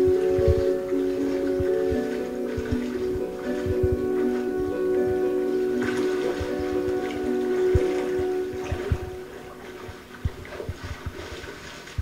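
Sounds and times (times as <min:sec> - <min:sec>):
film soundtrack music: 0:00.0 - 0:10.6
soft low knocks: 0:00.0 - 0:11.4
lake water: 0:00.0 - 0:12.0.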